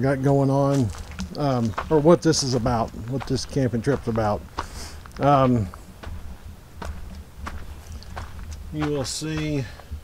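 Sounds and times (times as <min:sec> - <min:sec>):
footsteps on dirt and grass: 0:00.0 - 0:10.0
low rumble: 0:00.9 - 0:10.0.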